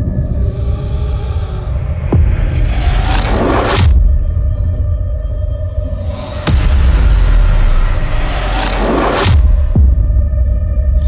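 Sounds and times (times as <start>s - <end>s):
deep rumble: 0.0s - 11.0s.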